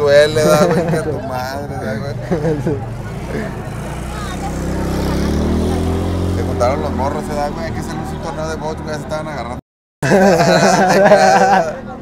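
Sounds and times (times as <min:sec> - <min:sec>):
vehicle engine approaching: 0:00.0 - 0:09.6.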